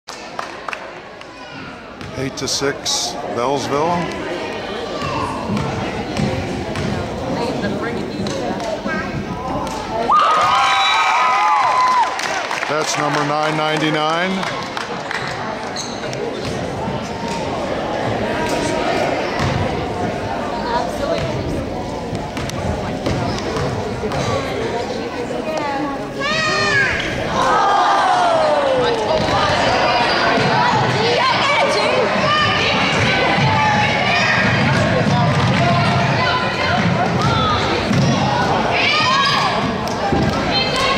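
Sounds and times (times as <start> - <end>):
crowd chatter: 0.1 - 40.9
murmur of spectators: 0.1 - 40.9
basketball bouncing: 5.0 - 7.1, 19.4 - 19.7
crowd cheering: 10.0 - 15.3, 26.2 - 40.9.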